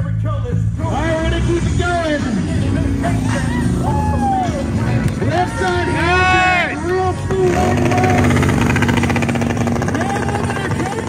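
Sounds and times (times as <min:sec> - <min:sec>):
motorcycle engine at steady revs: 0:07.2 - 0:11.0.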